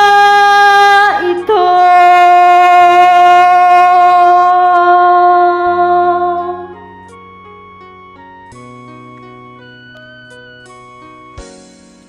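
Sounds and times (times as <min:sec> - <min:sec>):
karaoke backing track: 0:00.0 - 0:07.3
person singing long note: 0:01.1 - 0:06.8.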